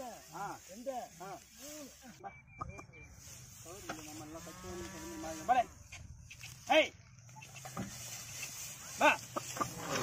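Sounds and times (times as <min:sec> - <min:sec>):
steady hiss: 0:00.0 - 0:02.2.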